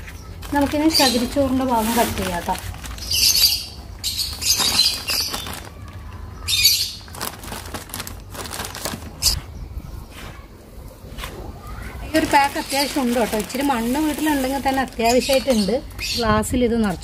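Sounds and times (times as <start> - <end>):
plastic bag rustling and crinkling: 0.0 - 9.5, 11.1 - 17.0.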